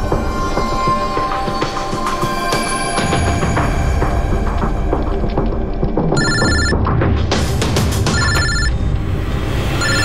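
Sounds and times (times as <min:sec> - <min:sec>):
dramatic background music: 0:00.0 - 0:10.0
electronic telephone ringing: 0:06.2 - 0:06.8, 0:08.1 - 0:08.7, 0:09.8 - 0:10.0.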